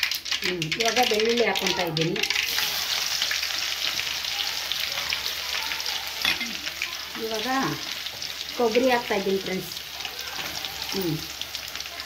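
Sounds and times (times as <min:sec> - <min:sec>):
garlic sizzling in oil: 0:00.0 - 0:12.0.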